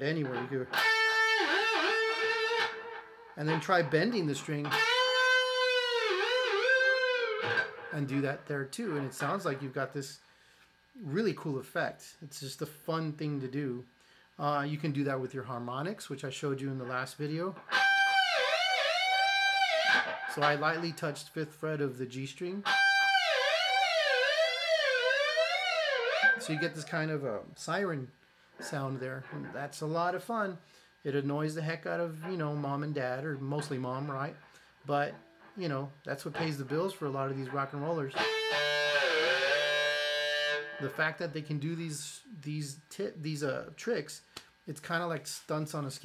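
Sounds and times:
electric guitar note with tremolo bar: 0:00.3 - 0:03.6, 0:04.6 - 0:08.0, 0:17.7 - 0:20.9, 0:22.6 - 0:26.9, 0:38.2 - 0:41.0.

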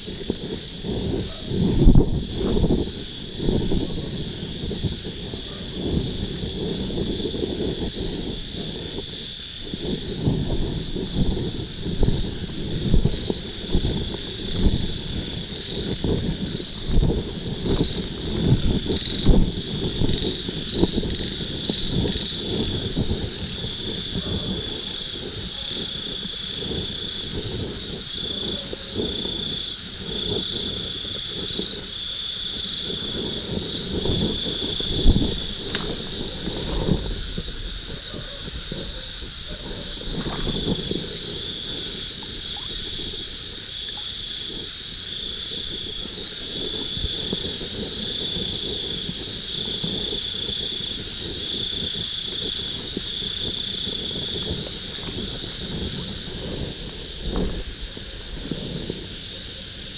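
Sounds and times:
high insect trill: 0:00.0 - 0:59.9
insects chirping: 0:00.0 - 0:59.9
microphone handling thumps: 0:09.7 - 0:24.6, 0:45.8 - 0:59.1.

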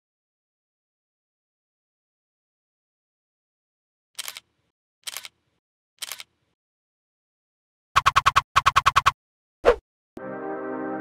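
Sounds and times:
camera shutter clicks: 0:04.2 - 0:04.4, 0:05.0 - 0:05.4, 0:06.0 - 0:06.3.

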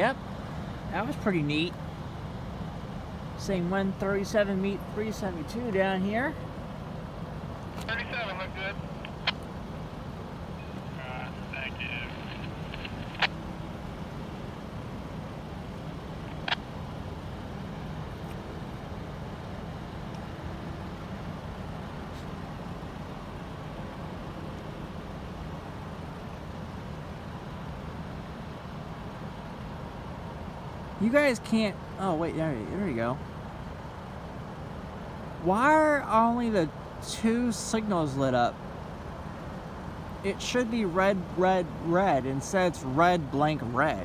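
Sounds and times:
low engine rumble: 0:00.0 - 0:44.0
sharp clicks: 0:09.0 - 0:09.5, 0:12.1 - 0:13.4.

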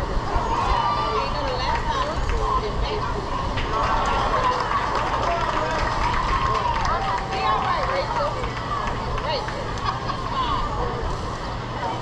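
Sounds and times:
people calling out and chattering: 0:00.0 - 0:12.0.

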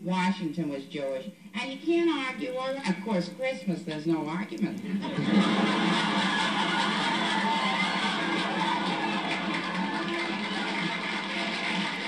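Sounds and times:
audience laughing: 0:04.9 - 0:12.0
audience applauding: 0:05.2 - 0:12.0.

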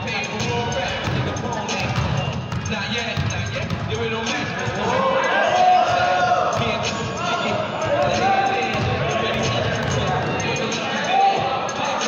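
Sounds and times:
players' voices in a hall: 0:00.0 - 0:12.0
basketballs bouncing on gym floor: 0:00.3 - 0:10.6.

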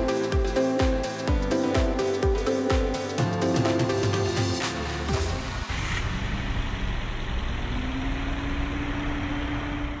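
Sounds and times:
faint engine whine: 0:05.4 - 0:10.0.

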